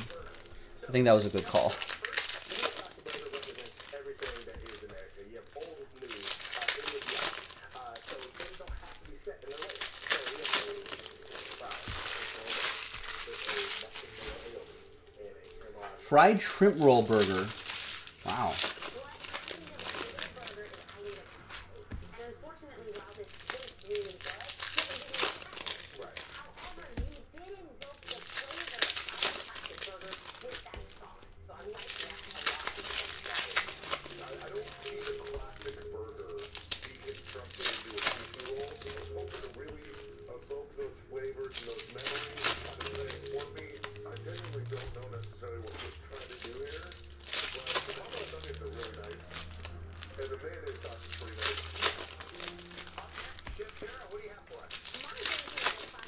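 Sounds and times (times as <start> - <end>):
foil packs being torn open: 0.0 - 15.6, 16.2 - 56.0
wrappers crinkling: 0.0 - 56.0.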